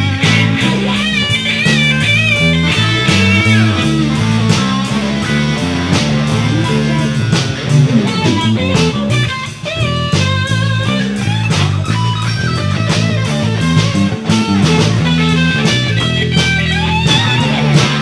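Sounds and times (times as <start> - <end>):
electric bass line: 0.0 - 18.0
electric lead guitar bent notes: 0.0 - 18.0
regular drum hits: 0.0 - 18.0.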